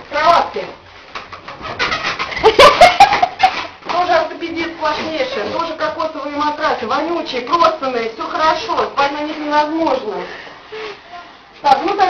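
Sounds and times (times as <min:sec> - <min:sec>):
bed squeaking and creaking: 0:01.2 - 0:06.1.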